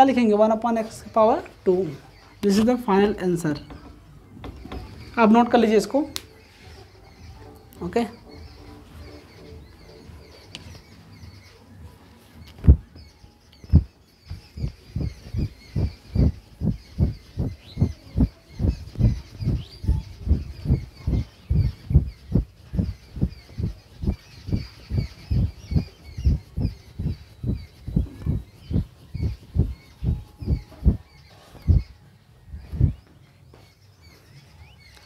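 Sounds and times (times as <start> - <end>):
small birds chirping: 0.0 - 35.0.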